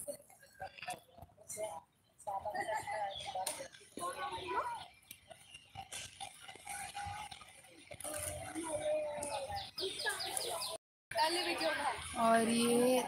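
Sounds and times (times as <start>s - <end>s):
people talking indistinctly: 0.0s - 13.0s.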